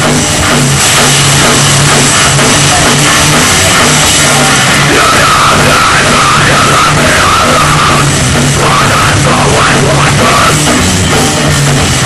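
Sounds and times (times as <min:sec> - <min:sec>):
hardcore band playing loud: 0:00.0 - 0:12.0.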